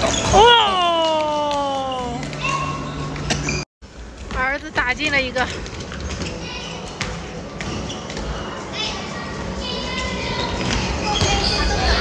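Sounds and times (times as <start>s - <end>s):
children's voices in a hall: 6.1s - 12.0s.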